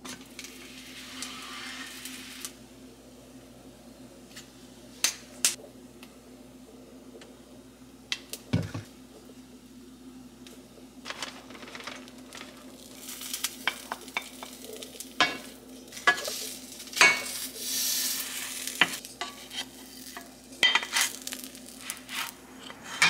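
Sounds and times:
tortilla sizzling in a pan: 0.0 - 2.6, 12.4 - 22.4.

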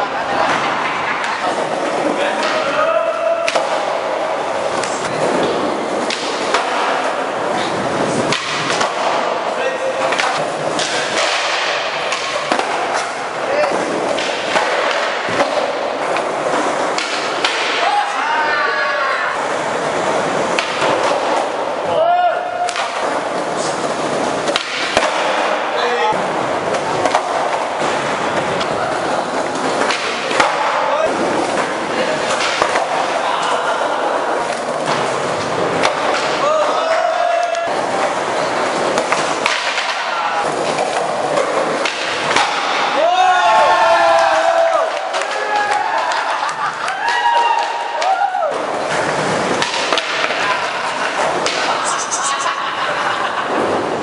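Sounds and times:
skateboard wheels rolling on tiles: 0.0 - 21.9, 22.7 - 54.0
skateboard clacks: 0.0 - 54.0.

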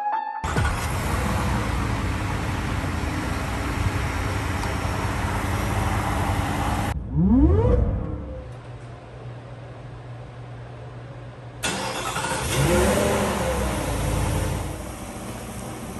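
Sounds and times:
supercharged truck engine running: 0.5 - 8.8, 11.6 - 15.9.

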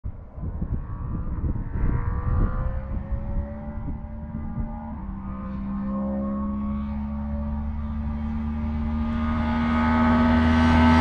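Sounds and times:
wind buffeting microphone: 0.1 - 5.8
distant engine drone: 1.8 - 11.0.

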